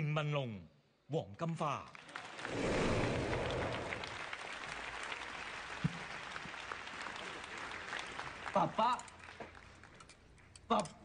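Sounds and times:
audience applauding: 0:02.0 - 0:09.9.

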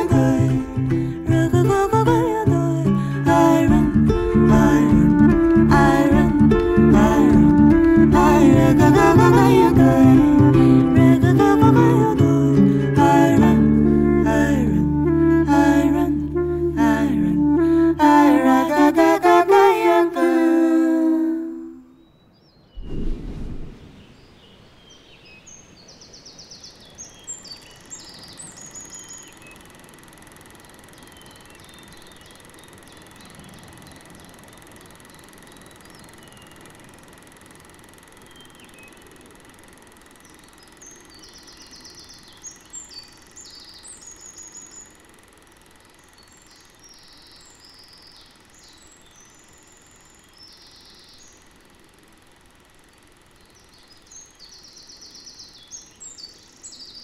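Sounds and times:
faint background hiss: 0:00.0 - 0:29.6
songbirds chirping and trilling: 0:23.6 - 0:30.2, 0:30.8 - 0:37.5, 0:38.1 - 0:51.7, 0:52.6 - 0:57.0.

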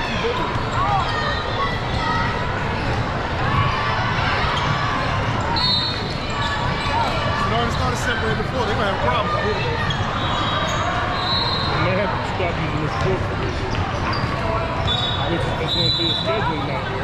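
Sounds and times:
many voices talking: 0:00.0 - 0:17.0.

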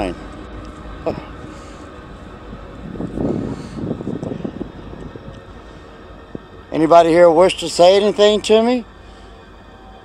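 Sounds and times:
wind rumble on microphone: 0:00.0 - 0:06.9.

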